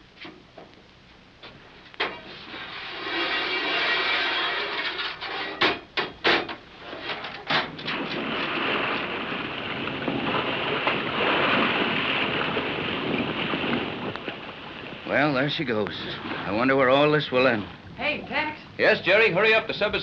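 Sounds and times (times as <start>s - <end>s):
rushing water and air: 7.6s - 20.0s.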